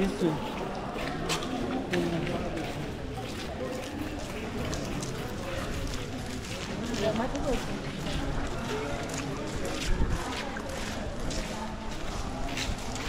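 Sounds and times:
footsteps: 0.0s - 13.0s
people talking: 0.0s - 13.0s.

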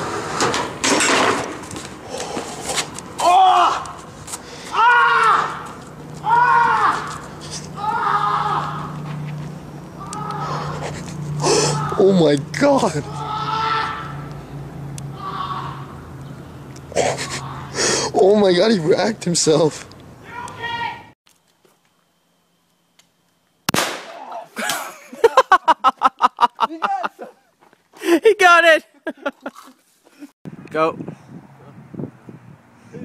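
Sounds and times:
high-pitched vocal cries: 10.0s - 12.1s, 17.0s - 17.9s
person gasping: 17.2s - 18.2s.

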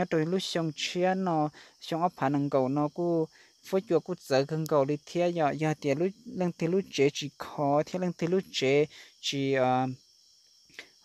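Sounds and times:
man speaking: 0.0s - 10.0s
faint high-pitched hum: 0.0s - 11.0s.

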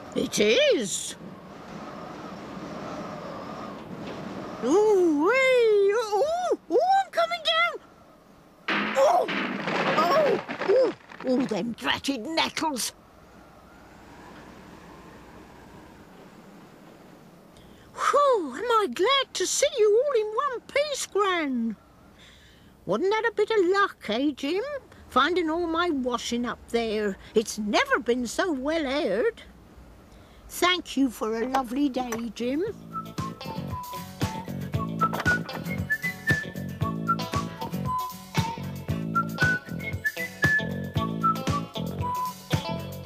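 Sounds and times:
faint whistling wind hiss: 0.0s - 8.7s, 12.2s - 23.0s
whistled tune with bouncy beat: 32.8s - 42.9s.

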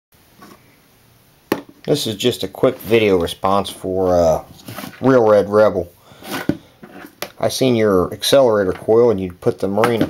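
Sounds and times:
man speaking: 1.8s - 6.0s, 7.4s - 10.0s.

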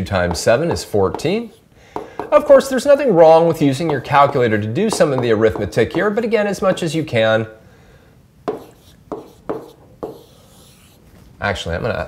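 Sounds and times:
stylus scratching on tablet screen: 8.5s - 11.1s.

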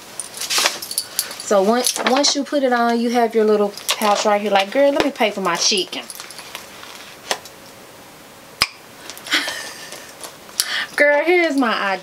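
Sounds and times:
bag rustling: 0.1s - 2.4s, 3.4s - 7.4s.

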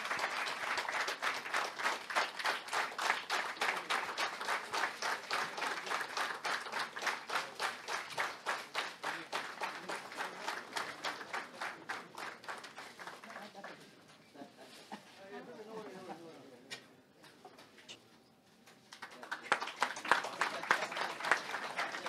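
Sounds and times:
audience applauding: 0.0s - 13.8s, 18.9s - 22.0s.

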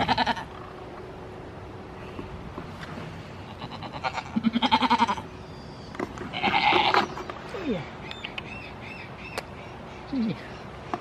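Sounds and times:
goat bleating: 0.0s - 0.5s, 3.5s - 5.3s, 6.3s - 7.1s.

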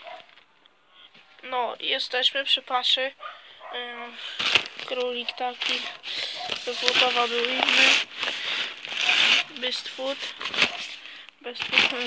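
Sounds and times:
plastic sack rustling and crinkling: 4.0s - 12.0s.

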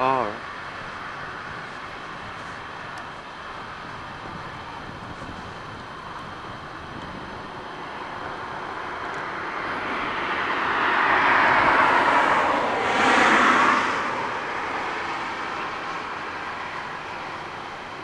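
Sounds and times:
vehicle passing by: 7.6s - 18.0s.

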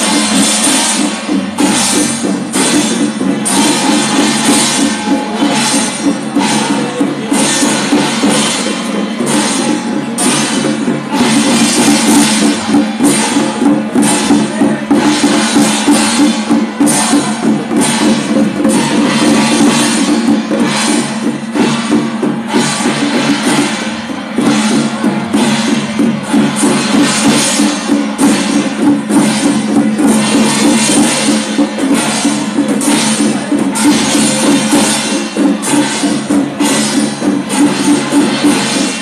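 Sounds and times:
temple ritual drums and percussion: 0.0s - 39.0s.

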